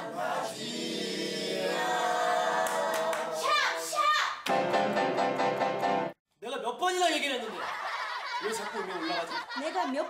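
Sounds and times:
mixed choir singing: 0:00.0 - 0:03.9.

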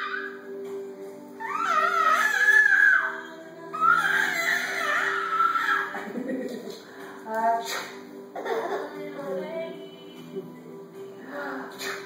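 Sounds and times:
baby squealing: 0:00.0 - 0:00.6, 0:01.4 - 0:06.0
background music: 0:00.0 - 0:12.0.

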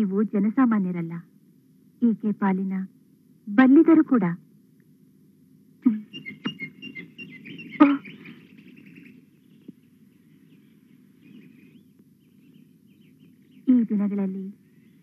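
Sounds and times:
low steady background hum: 0:00.0 - 0:15.0
birds chirping: 0:05.8 - 0:15.0.

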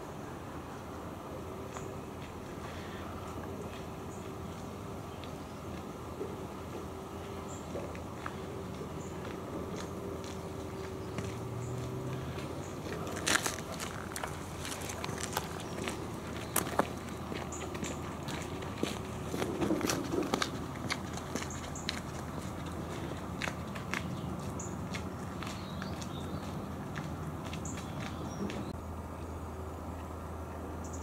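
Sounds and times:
low background noise: 0:00.0 - 0:31.0
footsteps on leaves and dirt: 0:06.7 - 0:28.7.

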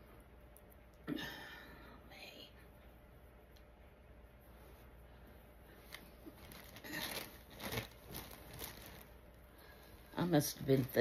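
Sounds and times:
t-shirt rustling: 0:05.7 - 0:11.0.

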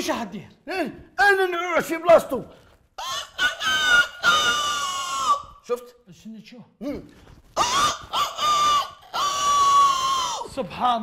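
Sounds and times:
shrill high-pitched cry: 0:03.0 - 0:05.7, 0:07.6 - 0:10.7.

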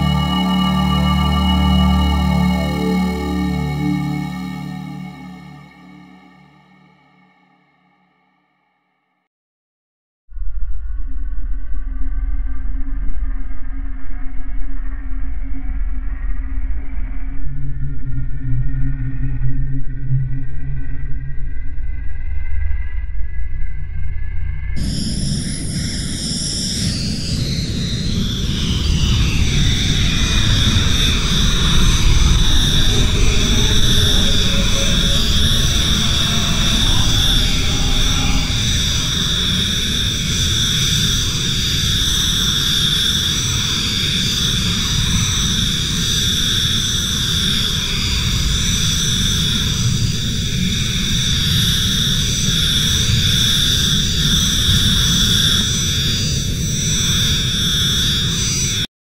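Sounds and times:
falling synth sweep: 0:00.0 - 0:07.2, 0:24.8 - 0:45.2
granular ambient synth drone: 0:00.0 - 0:07.7, 0:24.8 - 0:58.7.

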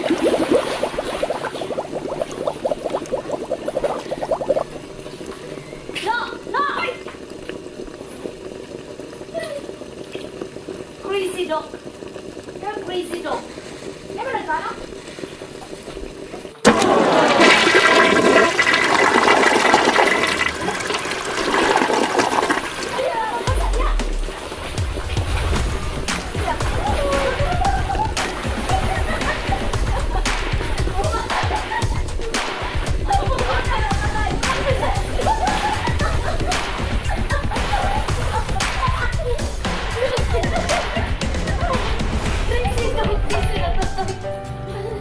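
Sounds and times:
pool water sloshing and splashing: 0:00.0 - 0:12.4, 0:13.4 - 0:42.8.

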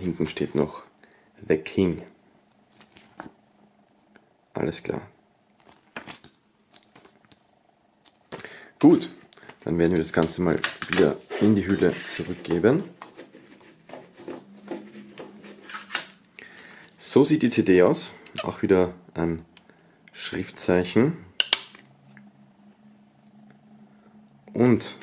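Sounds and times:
low room hum: 0:00.0 - 0:25.0
paper booklet rustling: 0:02.6 - 0:03.4, 0:05.6 - 0:08.4, 0:09.4 - 0:16.3.

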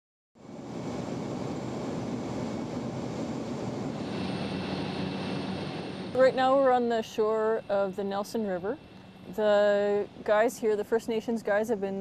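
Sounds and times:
plane engine and propeller drone: 0:00.4 - 0:12.0.

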